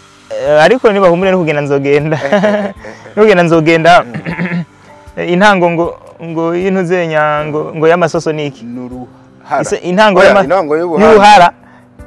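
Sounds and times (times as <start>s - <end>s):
man talking or laughing: 2.0s - 4.6s.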